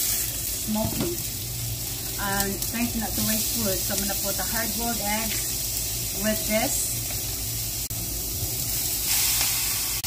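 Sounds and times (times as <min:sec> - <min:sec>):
greens sizzling in a pot: 0:00.0 - 0:10.0.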